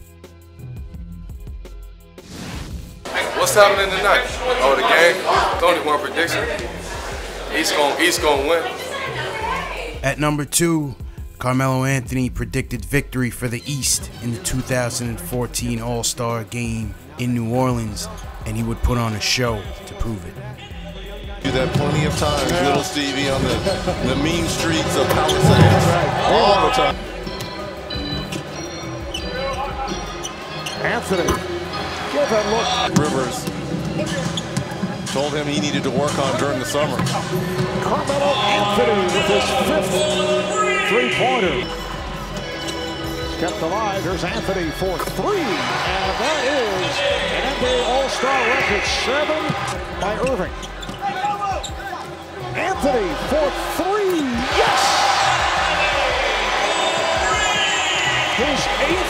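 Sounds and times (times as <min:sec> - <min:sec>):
music playing: 0:00.0 - 0:59.0
arena crowd cheering: 0:03.0 - 0:10.0, 0:17.2 - 0:33.4, 0:34.1 - 0:59.0.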